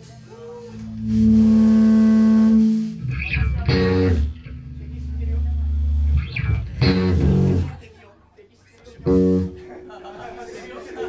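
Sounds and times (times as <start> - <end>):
electric guitar chords: 0.8 - 7.8, 9.0 - 9.7
bass note ringing: 0.9 - 7.8, 9.0 - 9.7.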